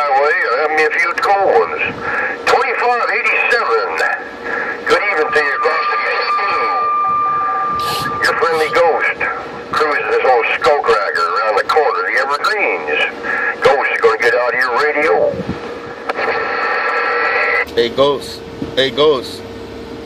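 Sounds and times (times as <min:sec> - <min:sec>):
garbled voices over cb radio: 0:00.0 - 0:07.1, 0:07.8 - 0:15.3
burst of radio hiss: 0:04.6 - 0:09.5
steady radio whistle: 0:04.8 - 0:10.6.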